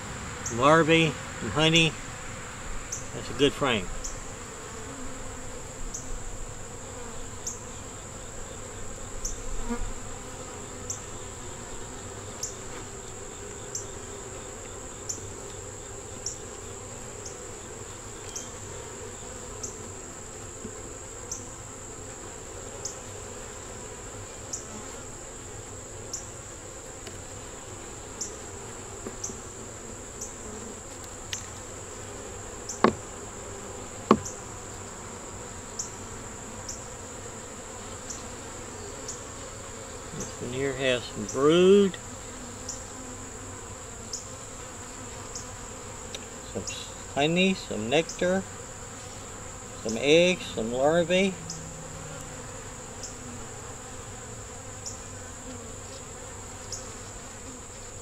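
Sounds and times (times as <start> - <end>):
bees humming: 0.0 - 58.0
sharp knocks of hive frames: 29.0 - 29.4, 32.6 - 34.9.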